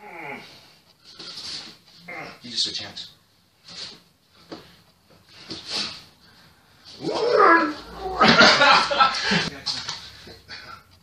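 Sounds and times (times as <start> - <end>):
dog whining: 7.0 - 8.2.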